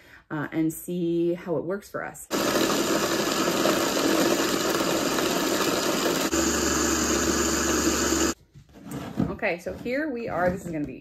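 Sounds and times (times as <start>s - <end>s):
blender grinding: 2.3s - 8.4s.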